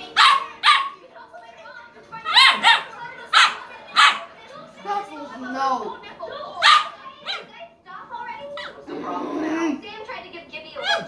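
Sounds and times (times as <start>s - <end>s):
puppy barking: 0.0s - 1.0s, 2.3s - 4.3s, 6.6s - 7.5s, 10.8s - 11.0s.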